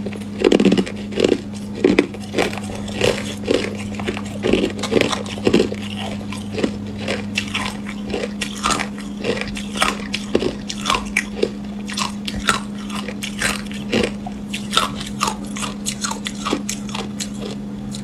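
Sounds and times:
ice crunching between teeth: 0:00.0 - 0:18.0
steady low hum: 0:00.0 - 0:18.0.

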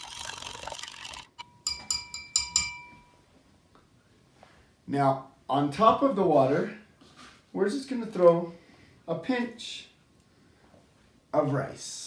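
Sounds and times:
spoon stirring in a glass: 0:00.0 - 0:03.0
spoon tapping glass rim: 0:01.4 - 0:03.2.

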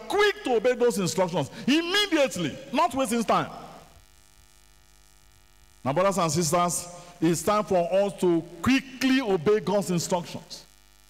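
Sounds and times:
man speaking: 0:00.0 - 0:03.8, 0:05.8 - 0:10.7
faint electrical hum: 0:00.0 - 0:11.0.

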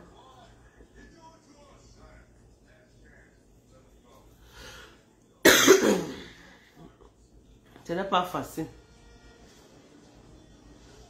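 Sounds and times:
woman coughing: 0:05.4 - 0:06.4.

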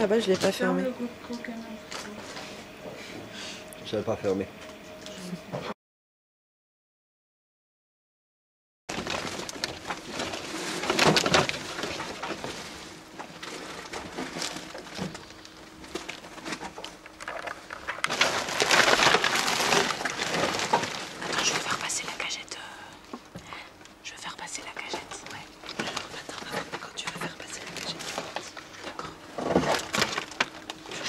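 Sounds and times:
plastic bags rustling: 0:08.9 - 0:22.0, 0:25.2 - 0:31.0.

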